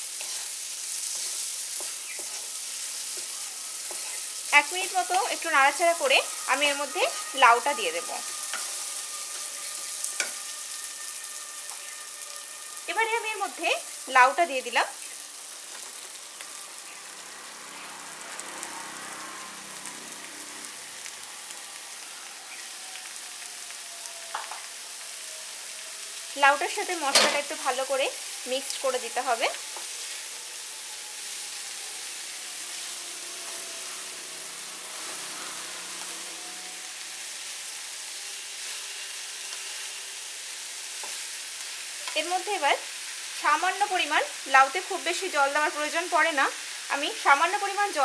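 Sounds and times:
food sizzling in a pan: 0.0 - 48.0
wooden spatula stirring: 0.2 - 4.5.

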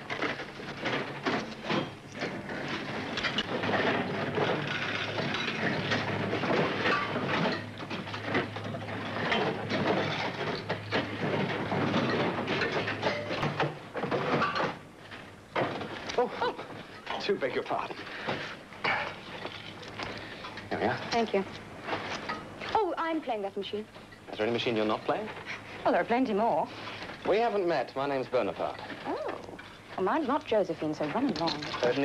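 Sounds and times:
poker machines clicking and rattling: 0.0 - 22.6, 26.8 - 32.0
low steady hum: 0.0 - 32.0.

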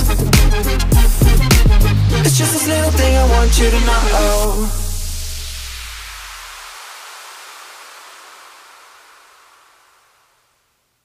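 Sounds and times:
white noise sweep: 0.0 - 11.0.

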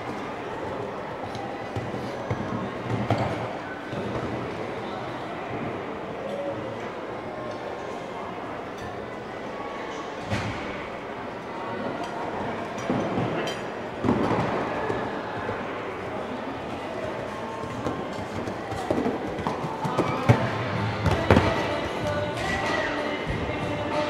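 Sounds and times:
music playing in a hall: 20.2 - 24.0.

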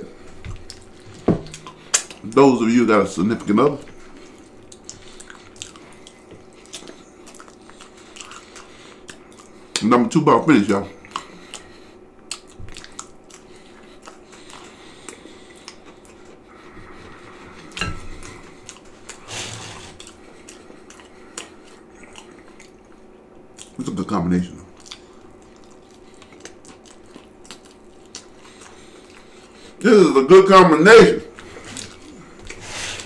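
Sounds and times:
man chewing with wet mouth sounds: 0.0 - 2.4, 3.3 - 9.9, 10.7 - 24.0, 24.6 - 29.8, 31.3 - 33.0.

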